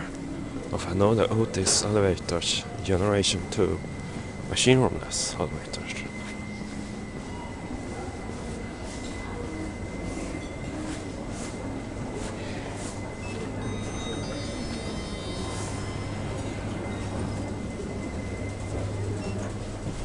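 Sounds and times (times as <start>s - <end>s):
elevator hum: 0.0s - 20.0s
high whine: 0.0s - 20.0s.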